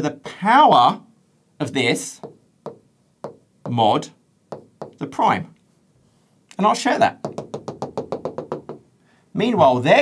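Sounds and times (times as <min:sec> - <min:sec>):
stylus tapping on touchscreen: 0:02.2 - 0:03.8, 0:04.5 - 0:05.1, 0:07.2 - 0:08.8.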